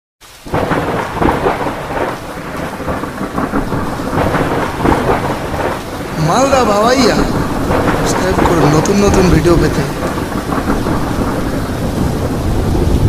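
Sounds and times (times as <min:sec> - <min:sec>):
steady rain: 0:00.2 - 0:13.0
thunder rumbling: 0:00.4 - 0:13.0.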